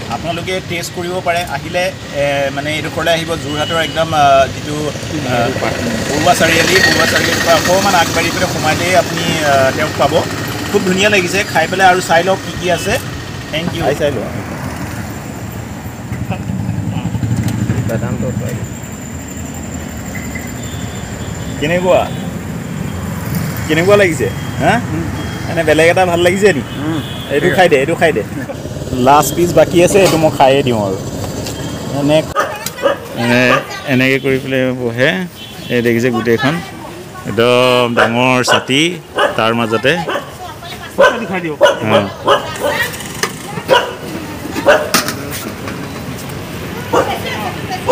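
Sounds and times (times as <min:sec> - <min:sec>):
vehicle engine idling: 0:04.6 - 0:33.6
dog barking: 0:32.4 - 0:33.9, 0:37.9 - 0:42.9, 0:43.6 - 0:45.0, 0:46.8 - 0:47.9.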